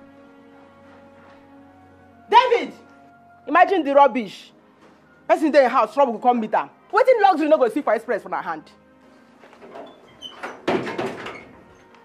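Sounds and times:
door banging: 9.6s - 11.7s.

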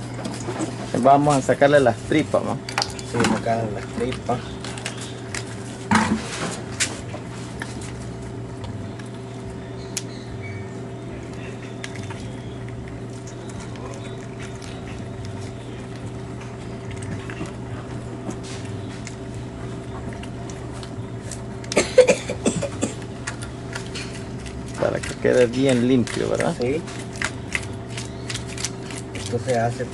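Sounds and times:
knife and wet fish handling: 0.0s - 29.9s
steady hum: 0.0s - 29.9s.

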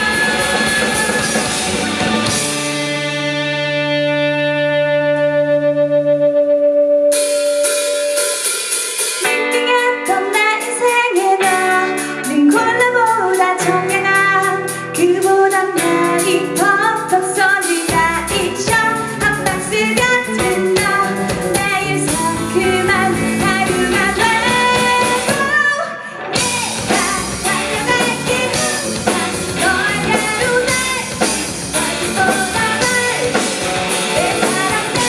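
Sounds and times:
female singer: 0.0s - 2.4s, 9.2s - 35.0s
drums: 0.0s - 6.2s, 6.9s - 35.0s
bass guitar: 0.0s - 8.5s, 11.4s - 35.0s
electric guitars: 0.0s - 35.0s.

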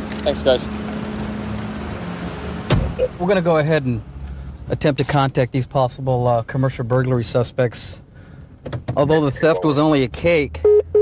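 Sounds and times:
short thump: 2.7s - 3.0s.

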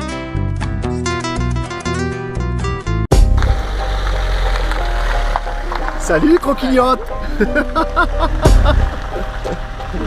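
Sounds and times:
acoustic guitar music: 0.0s - 10.0s
vehicle noise: 3.1s - 10.0s.

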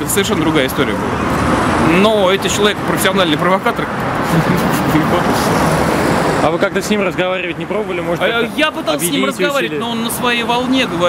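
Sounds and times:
rush of cars: 0.0s - 11.0s.

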